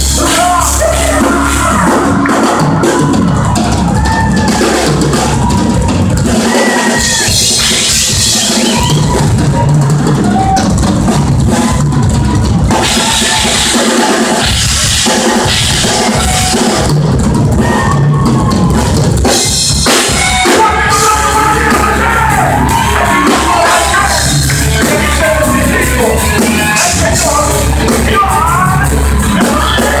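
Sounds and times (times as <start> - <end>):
bass drum and snare: 0.0 - 30.0
heavy metal band playing: 0.0 - 30.0.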